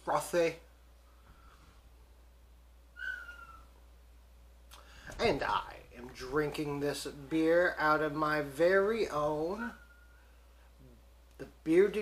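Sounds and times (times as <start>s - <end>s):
high whistle-like tone: 3.0s - 3.7s, 9.7s - 10.2s.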